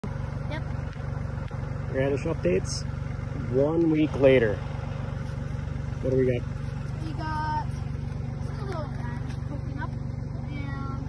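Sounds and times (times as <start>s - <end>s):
engine idling: 0.0s - 11.0s.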